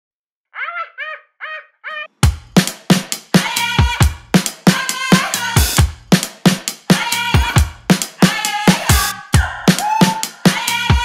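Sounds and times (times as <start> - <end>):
high-pitched voice syllables: 0.6 - 2.1.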